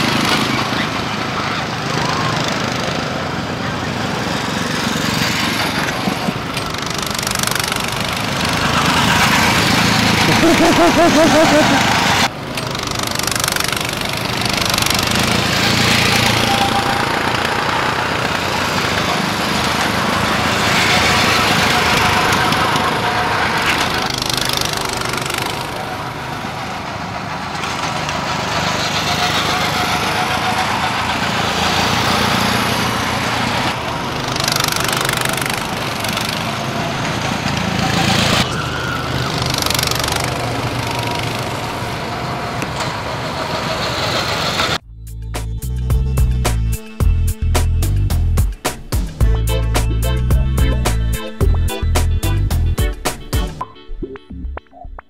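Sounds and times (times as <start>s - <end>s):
go-kart engines driving past: 0.0s - 44.8s.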